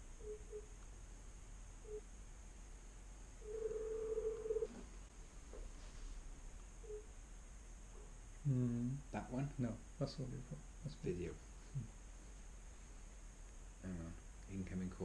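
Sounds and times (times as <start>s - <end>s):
faint room hum: 0.0s - 15.0s
short beeps: 1.8s - 2.0s
laptop call signal tone: 3.4s - 4.7s.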